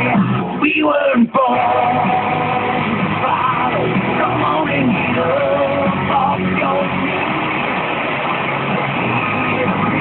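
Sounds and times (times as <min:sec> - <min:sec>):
rock song on radio: 0:00.0 - 0:10.0
radio static hiss: 0:01.5 - 0:10.0.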